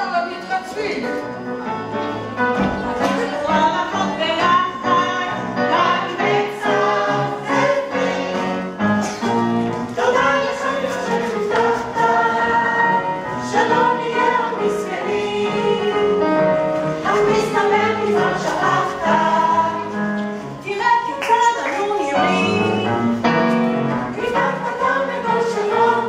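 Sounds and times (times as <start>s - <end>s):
instrumental accompaniment: 0.0s - 26.0s
voices singing together: 2.4s - 26.0s.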